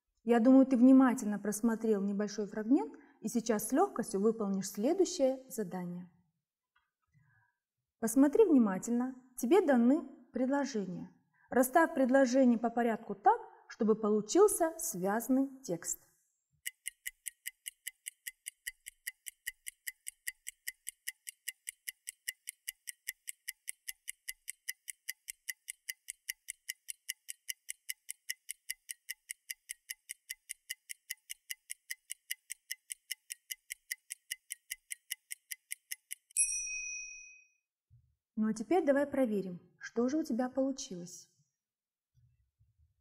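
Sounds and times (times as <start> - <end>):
clock ticking: 16.6 - 36.4
bell ding: 36.4 - 37.6.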